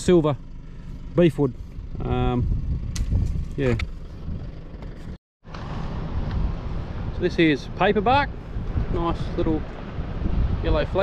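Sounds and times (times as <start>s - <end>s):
wind buffeting microphone: 1.8s - 4.6s, 5.5s - 11.0s.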